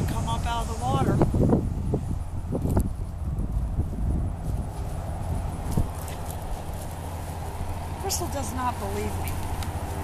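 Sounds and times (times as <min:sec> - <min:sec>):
footsteps on dirt path: 0:02.0 - 0:10.0.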